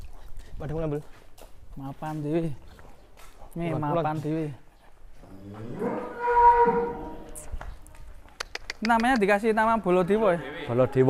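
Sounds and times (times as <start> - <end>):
bull mooing: 5.4 - 7.4.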